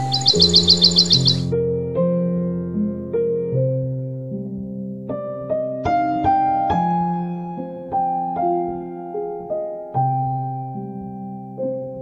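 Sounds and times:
bird chirping trill: 0.0s - 1.5s
slow sad piano music: 0.0s - 12.0s.

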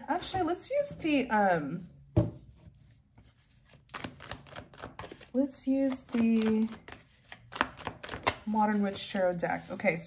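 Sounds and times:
cards clicking and tapping: 3.9s - 8.5s.

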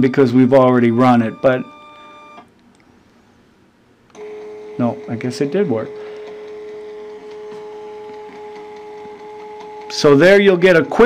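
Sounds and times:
receipt printer whine: 0.0s - 2.5s, 4.1s - 11.0s.

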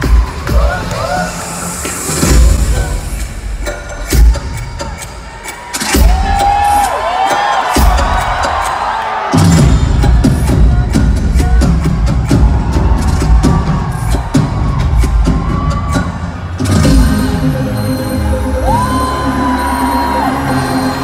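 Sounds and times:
crowd cheering: 4.8s - 10.6s, 11.8s - 21.0s
dance track with pounding bass: 9.4s - 17.5s.

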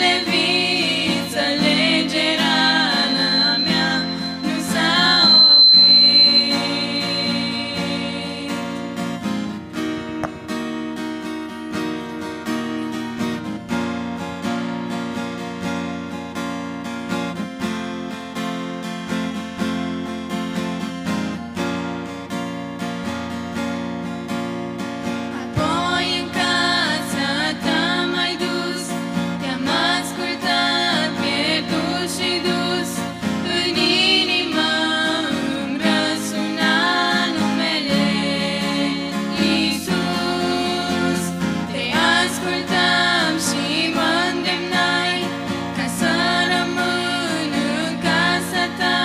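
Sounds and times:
women singing: 0.0s - 9.0s, 25.4s - 49.0s
acoustic guitar: 0.0s - 49.0s.

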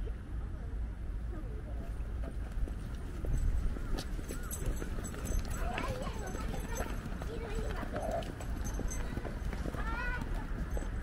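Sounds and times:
faint voices of passers-by: 0.0s - 11.0s
footsteps on pavement: 1.9s - 11.0s.

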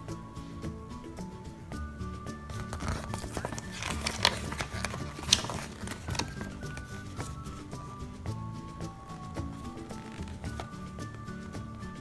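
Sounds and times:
background music: 0.0s - 12.0s
paper crinkling: 2.5s - 7.9s, 9.8s - 10.8s.

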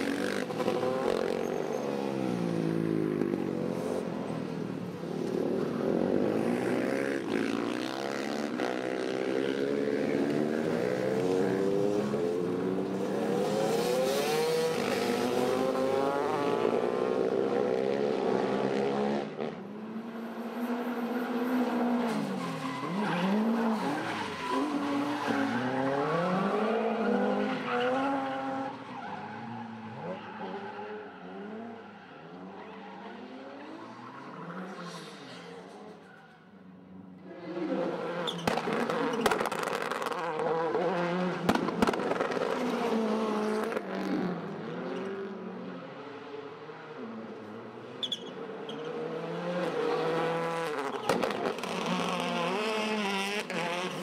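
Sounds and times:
motorcycle engines revving: 0.0s - 4.1s, 5.1s - 19.5s, 49.0s - 54.0s.

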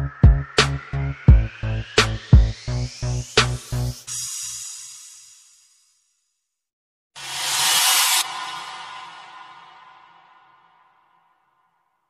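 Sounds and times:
whoosh sound effect: 7.2s - 11.0s.

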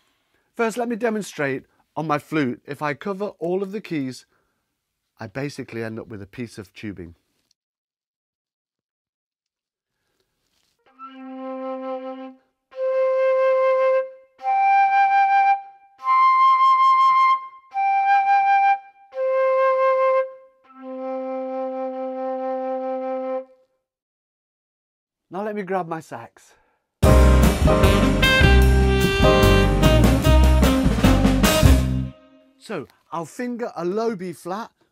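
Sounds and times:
flute overblown held notes: 10.9s - 23.6s.

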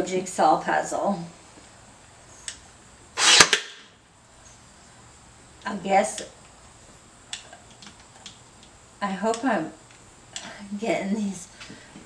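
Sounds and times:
nail gun firing: 3.2s - 3.8s.

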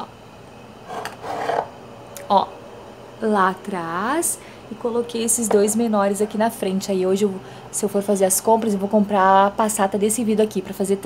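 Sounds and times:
glass jars scraping: 0.8s - 1.7s.

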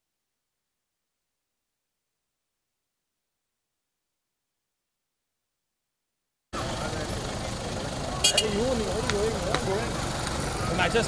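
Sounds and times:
car engine running: 6.6s - 11.0s
street rumble: 6.6s - 11.0s.

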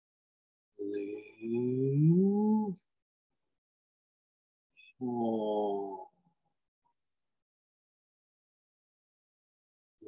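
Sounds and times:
low voice chanting meditation tone: 0.8s - 2.8s.

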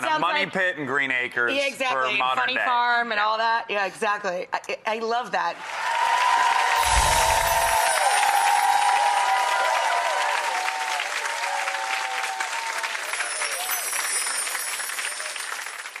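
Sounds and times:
audience applauding: 5.6s - 16.0s.

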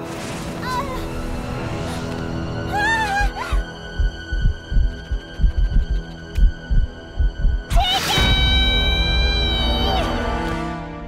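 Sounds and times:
heartbeat-like thumps: 3.2s - 7.8s.

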